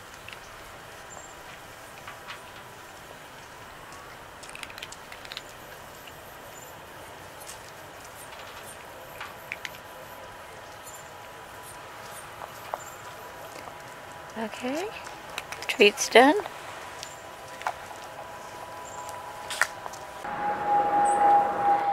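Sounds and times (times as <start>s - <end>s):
steady outdoor hiss: 0.0s - 21.9s
cat crunching dry treats: 4.3s - 6.0s, 14.7s - 15.8s.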